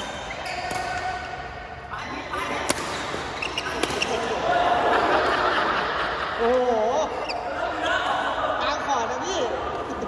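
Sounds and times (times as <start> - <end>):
racket hitting shuttlecock: 0.0 - 1.3, 2.5 - 4.3
players' voices: 0.0 - 10.0.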